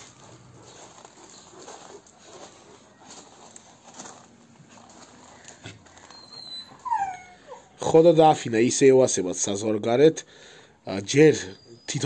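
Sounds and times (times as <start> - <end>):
paws scuffling in soil: 0.0 - 7.0
dog whining: 5.8 - 7.8.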